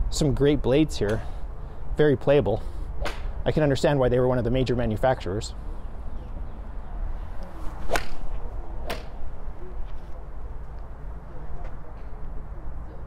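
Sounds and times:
golf club striking ball cracks: 7.9 - 9.2.

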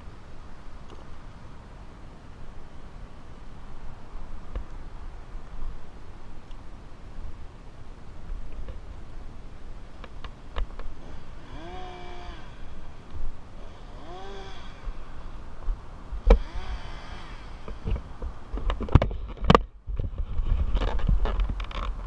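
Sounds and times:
wind buffeting microphone: 3.6 - 22.0.

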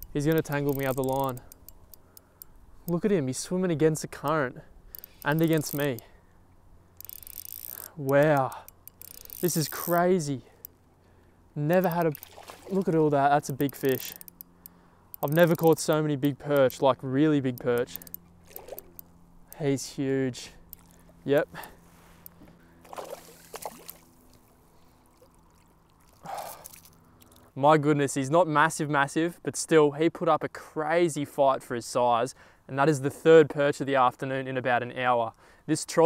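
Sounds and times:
fishing reel ratcheting buzz: 0.0 - 3.0, 4.2 - 6.1, 6.9 - 10.7, 11.7 - 12.4, 13.4 - 19.7, 20.6 - 22.4
water splashing and trickling: 11.7 - 14.4, 17.8 - 19.0, 20.7 - 21.8, 22.8 - 27.4.

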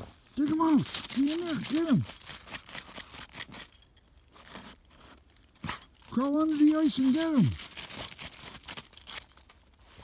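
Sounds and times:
dog digging in snow: 0.0 - 3.7, 4.3 - 10.0.

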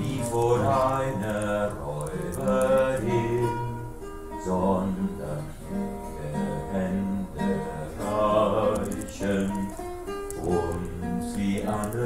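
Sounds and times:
acoustic guitar plucked notes: 0.0 - 12.0.

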